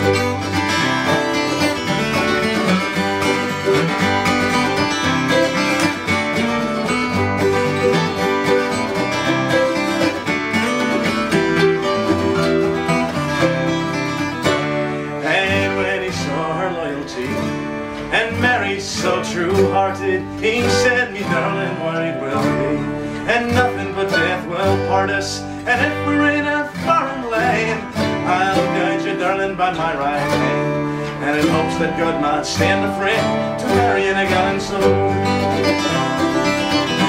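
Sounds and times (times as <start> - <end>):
plucked lead notes: 0.0 - 37.0
resonator guitar: 0.0 - 37.0
strummed acoustic guitars: 0.0 - 37.0.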